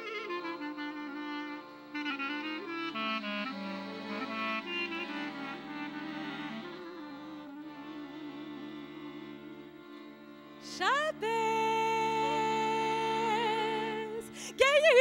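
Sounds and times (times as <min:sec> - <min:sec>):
clarinet melody: 0:00.0 - 0:10.4
accordion chords: 0:00.0 - 0:15.0.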